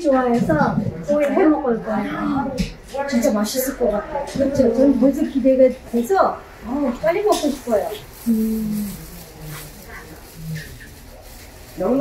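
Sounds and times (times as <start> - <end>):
plastic bag rustling: 3.0 - 12.0
person humming murmurs: 8.2 - 9.6.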